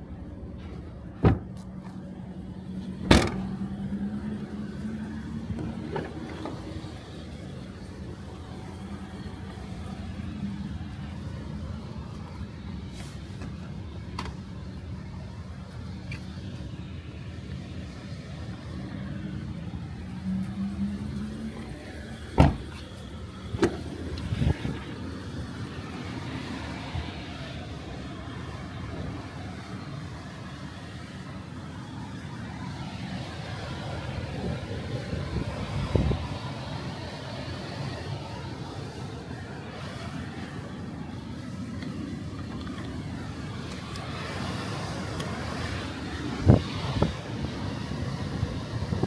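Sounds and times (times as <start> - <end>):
car boot lid slamming: 1.2 - 1.5, 3.0 - 3.5, 22.4 - 22.7
thump: 1.2 - 1.5, 3.0 - 3.5, 22.4 - 22.7.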